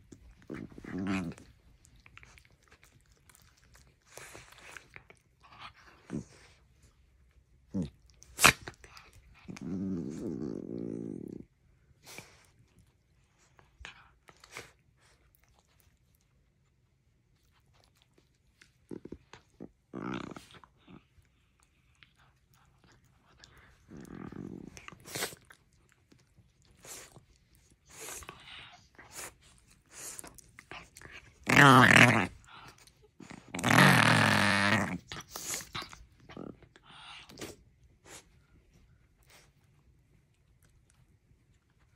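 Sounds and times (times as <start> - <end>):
dog play growl: 0.0 - 7.0, 7.6 - 12.6, 18.6 - 25.8, 27.9 - 38.3
clicks of teeth and jaws: 7.9 - 9.6.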